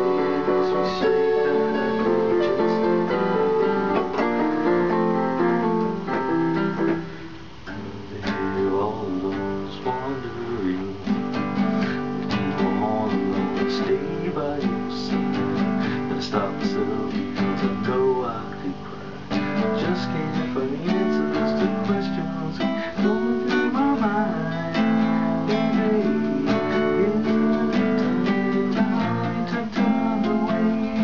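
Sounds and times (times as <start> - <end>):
digital keyboard chords: 0.0 - 10.3
classical guitar plucking: 0.0 - 31.0.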